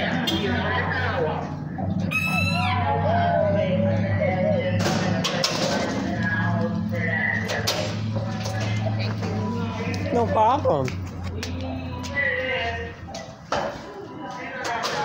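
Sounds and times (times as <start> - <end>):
indistinct voices: 0.0 - 15.0.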